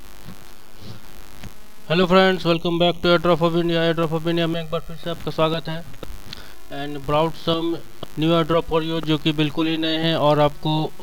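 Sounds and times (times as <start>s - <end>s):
low electrical hum: 0.0s - 11.0s
man's voice: 1.9s - 11.0s.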